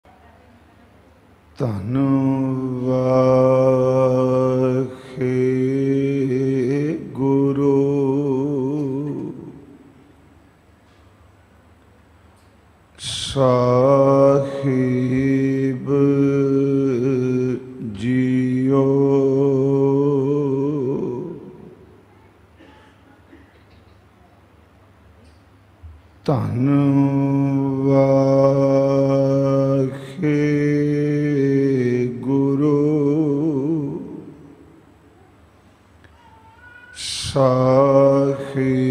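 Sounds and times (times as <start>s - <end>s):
man chanting: 1.5s - 10.0s, 13.0s - 21.9s, 26.2s - 34.8s, 36.2s - 38.9s.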